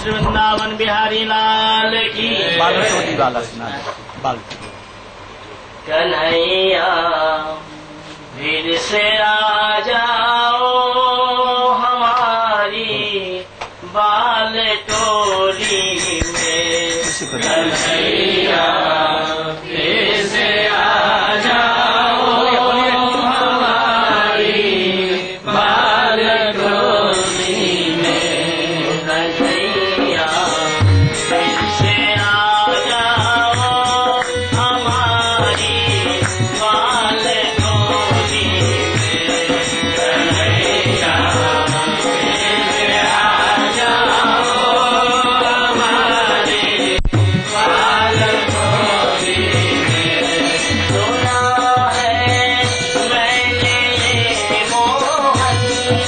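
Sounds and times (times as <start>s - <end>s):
voices chanting devotional song: 0.0s - 4.1s, 5.8s - 56.0s
musical accompaniment: 26.7s - 56.0s.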